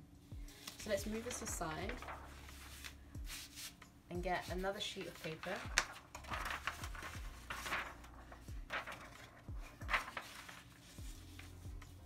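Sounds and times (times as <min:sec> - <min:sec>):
paper rustling and sliding: 0:00.6 - 0:03.8, 0:04.4 - 0:12.0.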